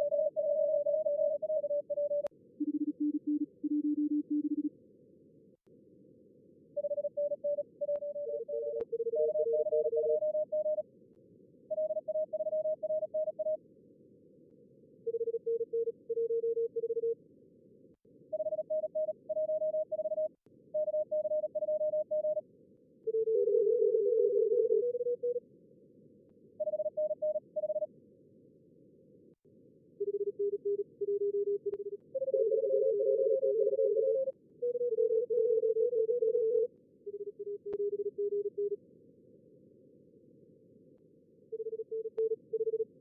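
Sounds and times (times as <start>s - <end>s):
morse code beeps: 0.0s - 4.7s, 6.8s - 10.8s, 11.7s - 13.6s, 18.4s - 22.4s, 41.6s - 42.8s.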